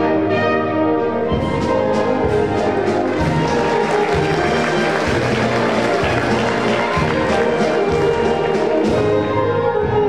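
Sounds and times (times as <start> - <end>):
wind band playing: 0.0 - 10.0.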